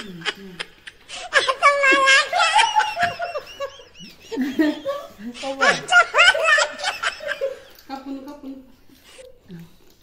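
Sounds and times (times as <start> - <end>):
woman giggling: 0.0 - 7.9.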